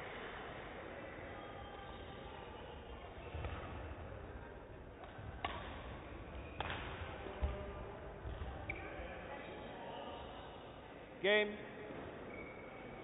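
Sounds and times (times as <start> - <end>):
racket striking shuttlecock: 6.6 - 6.9
shoe squeak: 12.2 - 13.0.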